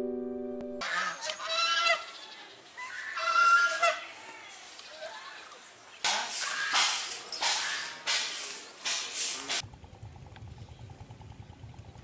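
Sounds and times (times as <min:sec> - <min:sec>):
geese honking: 0:00.8 - 0:05.6, 0:06.2 - 0:08.4.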